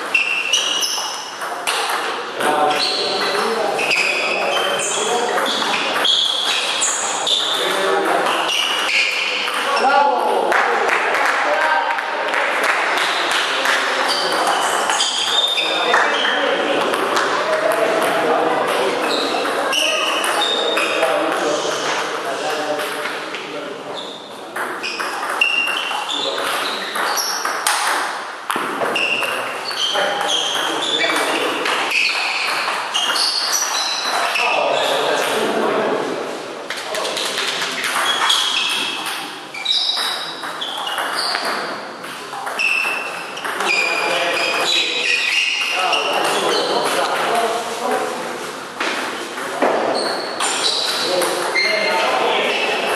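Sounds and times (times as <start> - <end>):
short high squeaks: 0.0 - 1.8, 2.7 - 9.8, 14.0 - 16.4, 24.0 - 27.6, 28.9 - 35.1, 37.8 - 41.7, 42.5 - 46.8, 49.9 - 52.7.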